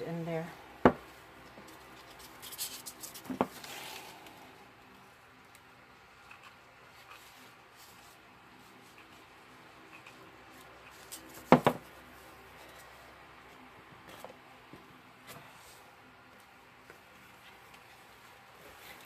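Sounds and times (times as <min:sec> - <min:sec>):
rustling scrape of craft materials: 0:01.7 - 0:04.2.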